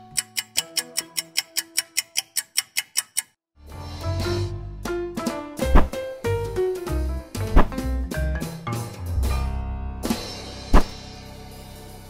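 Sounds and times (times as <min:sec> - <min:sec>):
timer ticking: 0:00.0 - 0:03.4.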